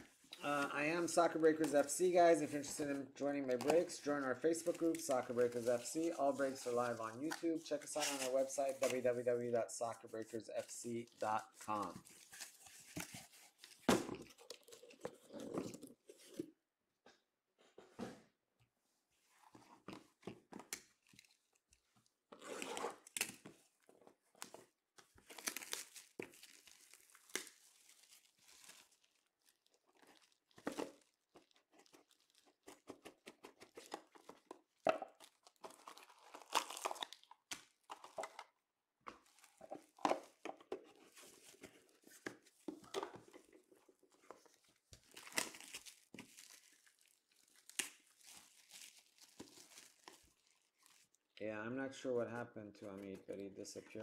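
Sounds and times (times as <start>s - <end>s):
boxes handled and opened: 0.3s - 9.2s, 10.6s - 16.5s, 30.0s - 46.7s
plastic wrap tearing and crumpling: 24.3s - 38.3s, 43.6s - 51.4s.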